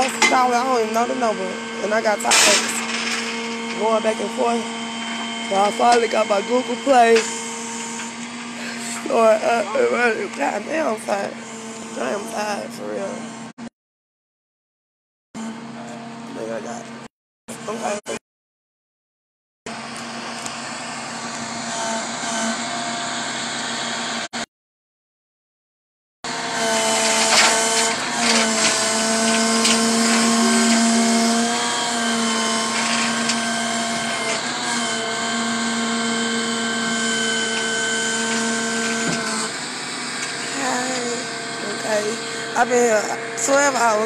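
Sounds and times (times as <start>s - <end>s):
truck motor humming: 0.0s - 13.5s, 26.3s - 44.0s
whining tones: 0.0s - 13.5s, 26.3s - 44.0s.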